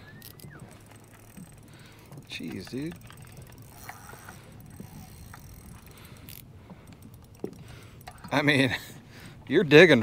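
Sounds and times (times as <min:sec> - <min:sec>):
fishing reel whirring: 0:00.0 - 0:08.7.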